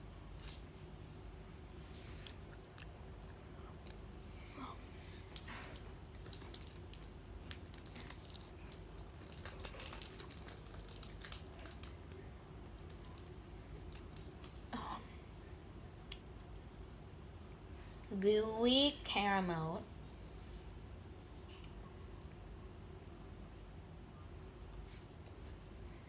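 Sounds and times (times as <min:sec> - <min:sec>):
foil wrapper crackling: 0:05.3 - 0:14.7.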